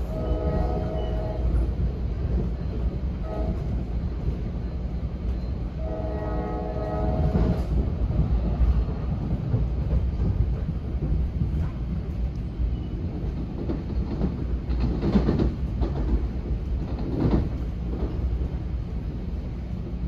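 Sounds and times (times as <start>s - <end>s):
train horn blasts: 0.0s - 1.7s, 3.2s - 3.9s, 5.8s - 7.8s
train rumbling: 0.0s - 20.0s.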